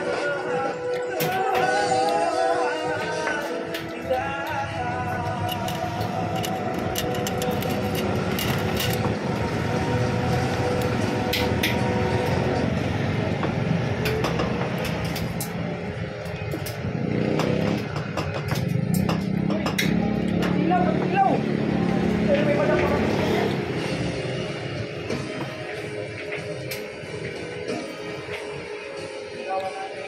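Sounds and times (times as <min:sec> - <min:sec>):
pop song: 0:00.0 - 0:08.1, 0:25.2 - 0:30.0
indistinct voices: 0:00.0 - 0:30.0
motorcycle traffic: 0:03.1 - 0:29.2
motorbike engine: 0:03.8 - 0:27.8.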